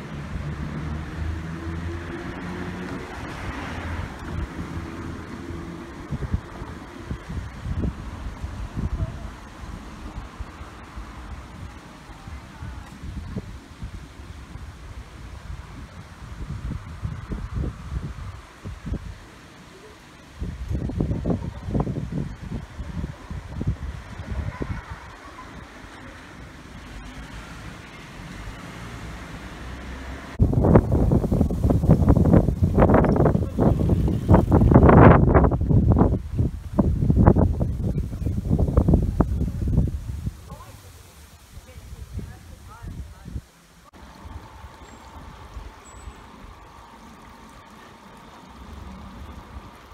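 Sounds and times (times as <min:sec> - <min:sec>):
wind buffeting microphone: 0:00.0 - 0:19.4, 0:20.2 - 0:27.0, 0:30.3 - 0:46.8.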